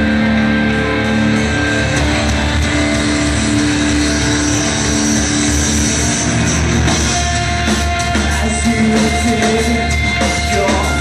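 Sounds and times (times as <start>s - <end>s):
bass and drums: 0.0s - 11.0s
distorted electric guitars: 0.0s - 11.0s
metal band playing: 0.0s - 11.0s.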